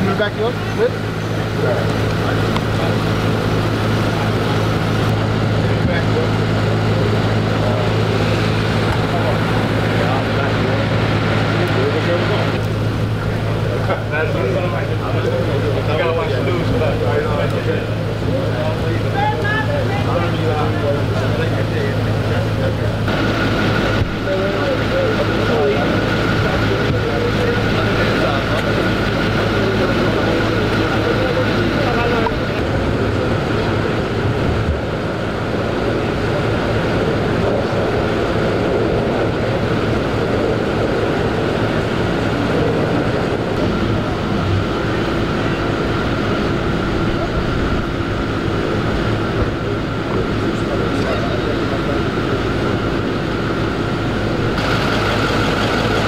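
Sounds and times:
idling vehicle engines hum: 0.0s - 56.0s
indistinct voices: 0.0s - 56.0s.

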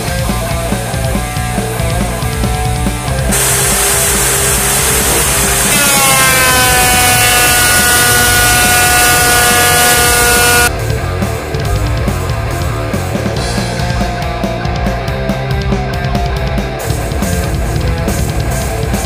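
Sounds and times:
rock music: 0.0s - 19.0s
thickness planer cutting board: 3.3s - 10.7s.

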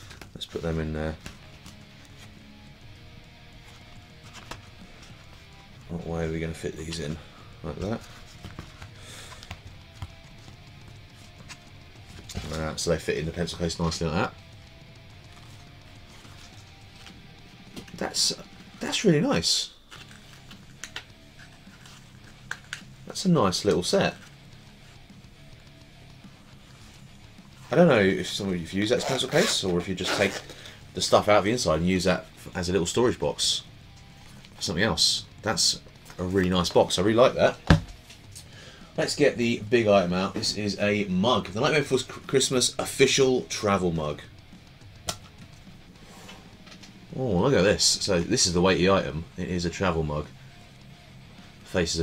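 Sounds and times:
faint background music: 0.0s - 52.0s.

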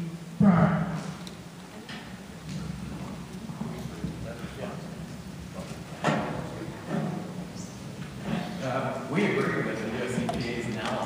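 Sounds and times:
steady low hum: 0.0s - 11.0s
low indistinct speech: 2.4s - 11.0s.

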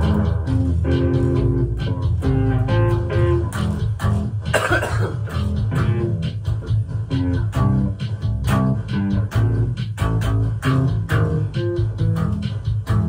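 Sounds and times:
pulsing bass line: 0.0s - 13.0s.

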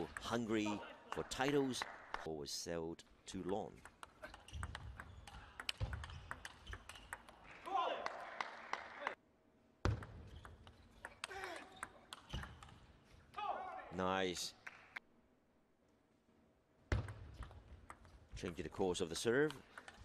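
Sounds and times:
table tennis ball clicking: 3.8s - 7.4s.

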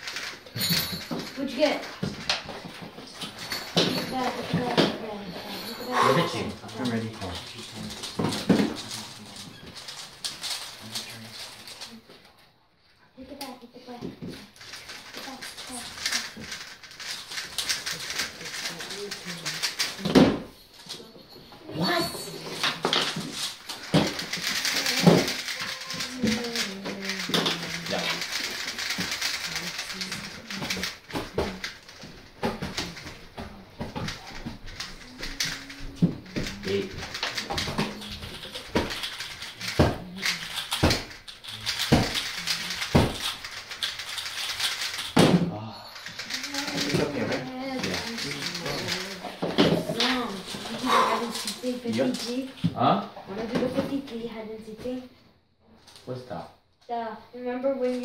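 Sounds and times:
puzzle cubes clicking rapidly: 0.0s - 12.0s, 14.3s - 20.6s, 22.4s - 52.6s
cubes knocking on mats: 22.7s - 45.5s
murmur of talk: 46.2s - 52.4s.

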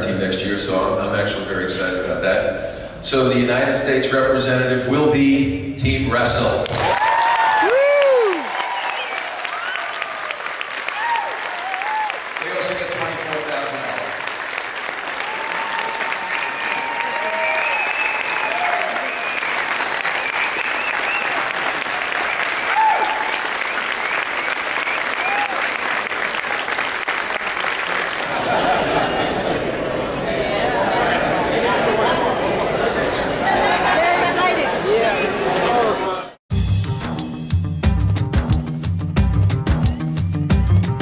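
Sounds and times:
audience applauding and cheering: 6.6s - 29.5s
shouts and whoops: 6.8s - 12.2s, 15.2s - 19.3s, 22.6s - 23.4s, 25.1s - 25.7s.

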